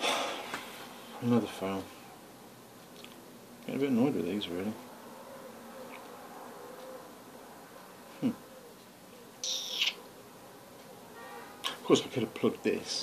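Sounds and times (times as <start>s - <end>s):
faint electrical hum: 0.0s - 13.0s
man murmuring hmm: 8.1s - 8.5s.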